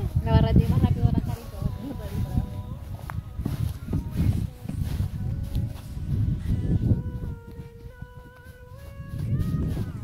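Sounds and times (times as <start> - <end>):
wind buffeting microphone: 0.0 - 10.0
thuds and rustling in grass: 2.1 - 7.6.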